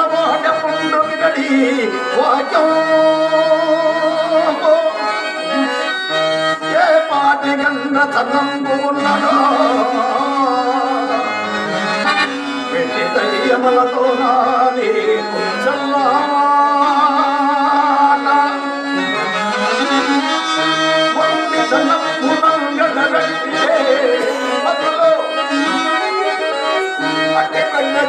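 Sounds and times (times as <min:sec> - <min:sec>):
harmonium melody: 0:00.0 - 0:28.0.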